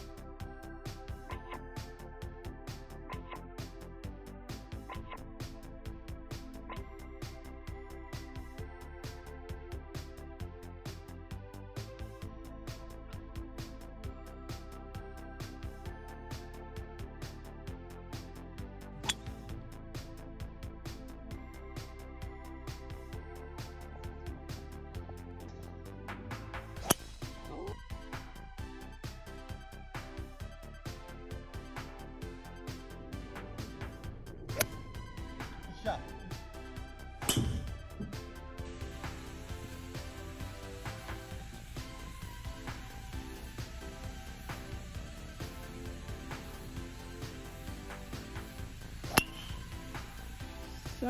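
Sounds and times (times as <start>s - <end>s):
background music with beat: 0.0s - 51.0s
golf club striking ball: 19.0s - 19.4s, 26.8s - 27.1s, 34.5s - 34.8s, 37.2s - 38.2s, 49.0s - 49.7s.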